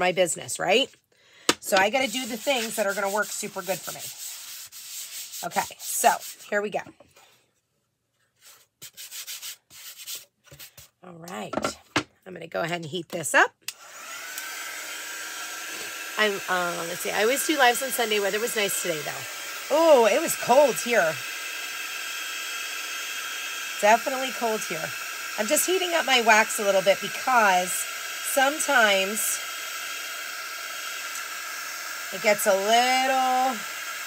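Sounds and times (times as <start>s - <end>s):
heat gun whining: 1.4s - 4.2s, 13.7s - 34.0s.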